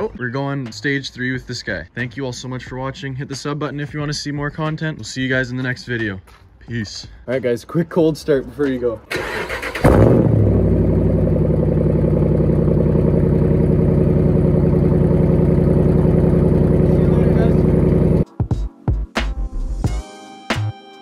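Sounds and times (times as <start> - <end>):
starter motor cranking: 9.1 - 10.0
engine starting and idling: 9.1 - 18.2.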